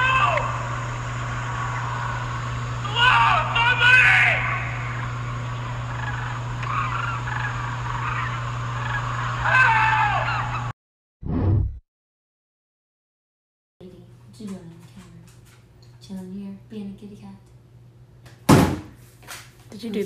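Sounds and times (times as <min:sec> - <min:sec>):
low hum: 0:00.0 - 0:10.7
warbling gobble-like calls: 0:04.5 - 0:10.7.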